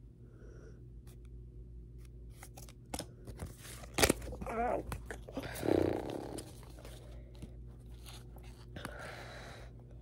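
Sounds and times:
trading cards and wrappers rustling: 1.9 - 9.0.

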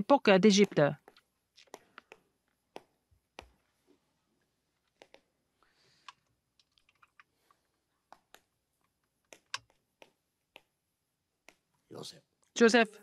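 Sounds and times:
faint irregular clicks: 0.6 - 3.7, 4.8 - 10.8, 11.4 - 11.8.

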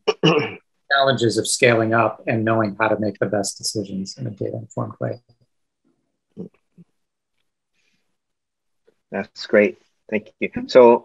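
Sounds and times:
person grunting: 0.1 - 5.1.

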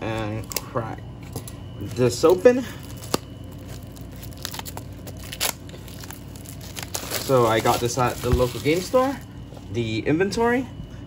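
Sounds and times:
plastic wrap crackling and tearing: 1.3 - 9.3.

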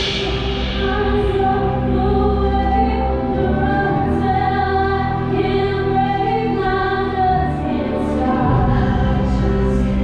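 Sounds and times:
choir-like voices singing: 0.0 - 10.0
steady low bass: 0.0 - 10.0.

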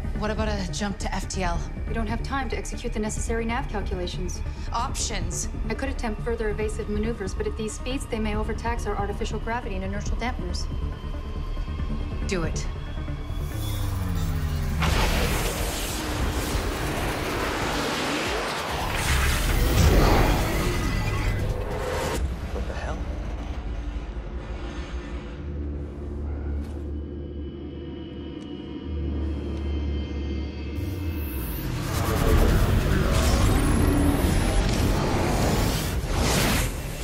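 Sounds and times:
tense dramatic score: 0.0 - 37.0
deep rumbles and whooshes: 13.1 - 27.5.

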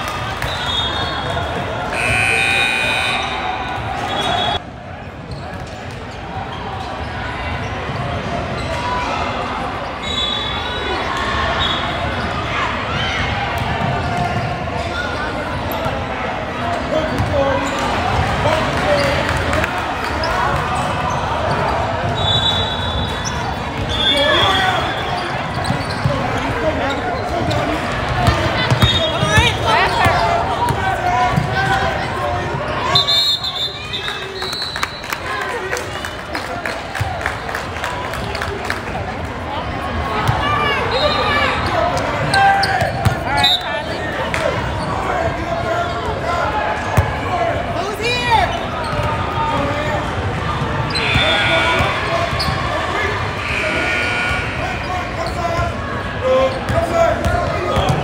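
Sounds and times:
shoe squeaks: 22.2 - 27.7, 50.8 - 52.8, 53.4 - 55.7
echoing voices: 44.0 - 58.0.

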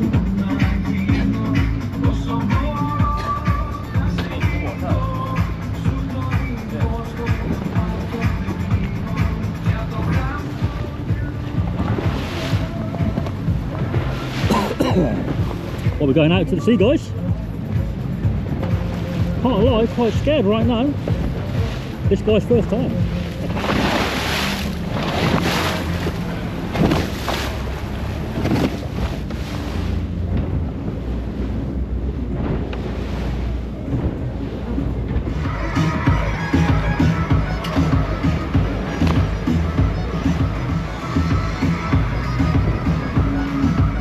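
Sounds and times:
background music: 0.0 - 44.0
motorboat engine rumble: 0.0 - 44.0
water rushing past hull: 0.0 - 44.0
wind on microphone: 22.8 - 40.6.

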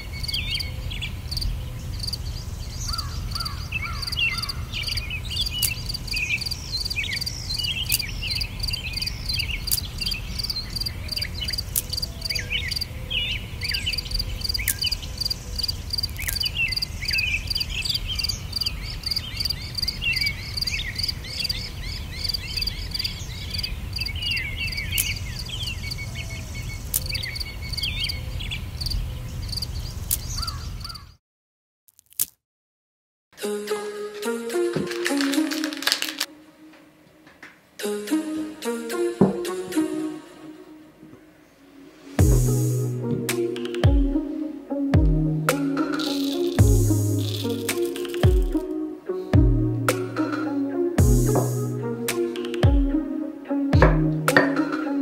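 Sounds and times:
high rapidly repeated bird call: 0.0 - 28.2
birds chirping and singing: 0.0 - 31.2.

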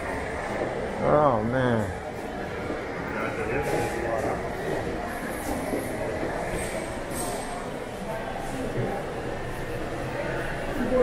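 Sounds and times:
indistinct voices of shoppers: 0.0 - 11.0
steady background hum: 0.0 - 11.0.

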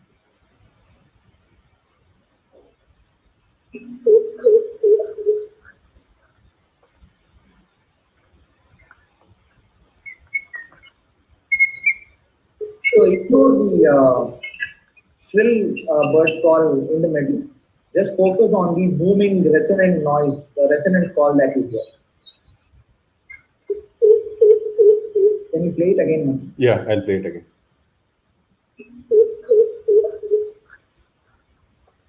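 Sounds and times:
recorded bird calls: 3.7 - 7.7, 8.4 - 27.1, 28.8 - 31.5.

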